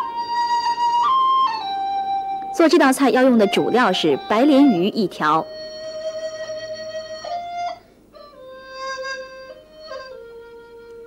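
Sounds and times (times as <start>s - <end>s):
slow music of held notes: 0.0s - 11.0s.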